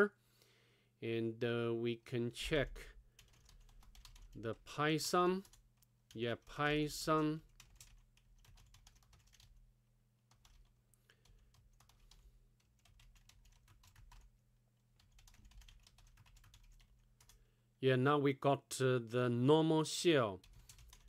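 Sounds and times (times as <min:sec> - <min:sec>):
typing on computer keyboard: 0:03.2 - 0:04.5, 0:05.4 - 0:09.6, 0:10.3 - 0:14.3, 0:15.0 - 0:17.4, 0:20.4 - 0:21.0.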